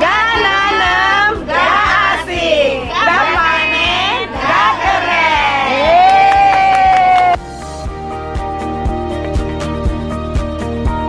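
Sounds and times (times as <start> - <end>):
women cheering: 2.9 - 7.4
music with steady beat: 6.8 - 11.0.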